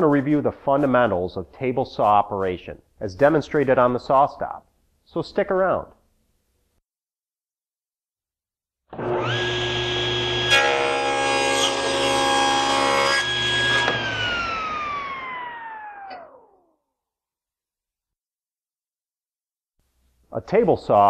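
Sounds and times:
saw cutting wood: 0:08.9 - 0:16.4
table saw blade whine: 0:08.9 - 0:16.7.

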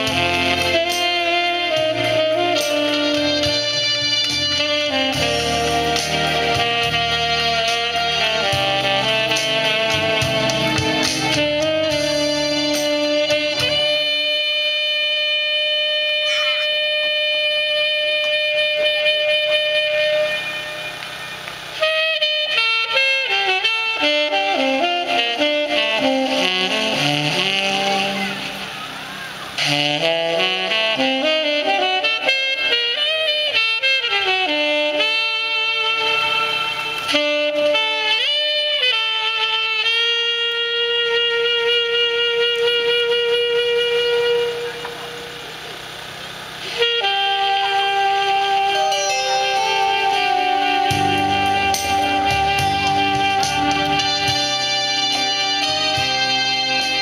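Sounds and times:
tenor saxophone melody: 0:00.0 - 0:57.0.

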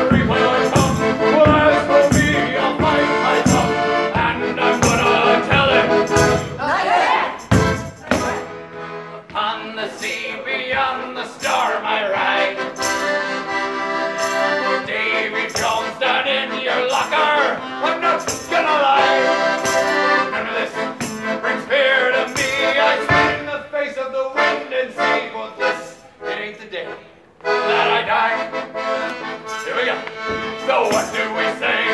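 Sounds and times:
person singing: 0:00.0 - 0:06.6
sustained instrumental chords: 0:00.0 - 0:06.6, 0:07.4 - 0:09.4, 0:12.4 - 0:16.8, 0:26.9 - 0:31.9.

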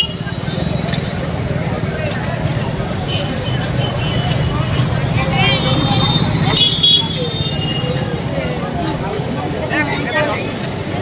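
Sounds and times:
motorcycle and scooter engines: 0:00.0 - 0:11.0
people's voices: 0:00.0 - 0:11.0.

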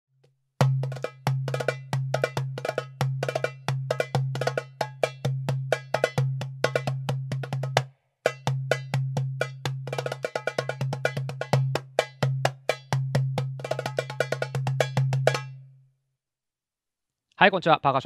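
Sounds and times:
goblet drum played by hand: 0:00.6 - 0:15.7.

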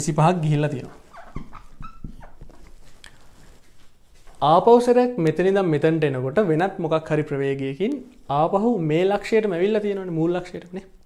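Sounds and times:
marker squeaking on whiteboard: 0:00.8 - 0:03.0.

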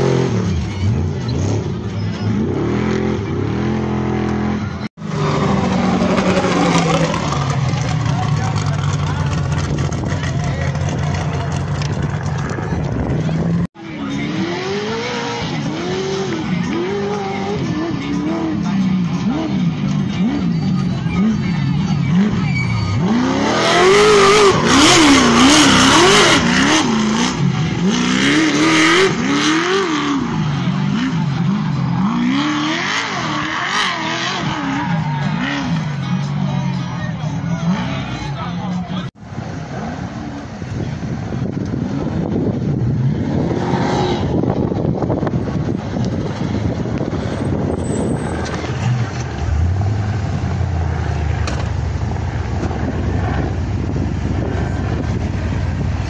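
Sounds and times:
race truck engines revving: 0:00.0 - 0:56.0.

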